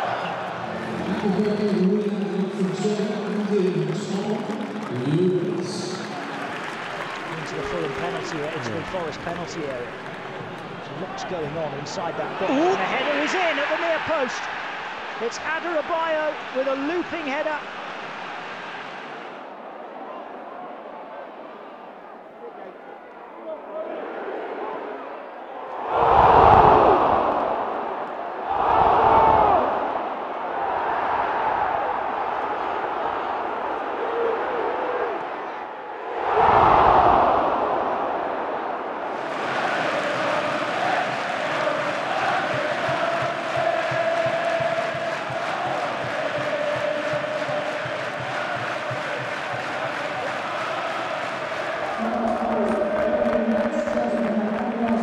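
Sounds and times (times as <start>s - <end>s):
stadium crowd roaring: 0.0s - 55.0s
crowd singing together: 39.1s - 54.0s.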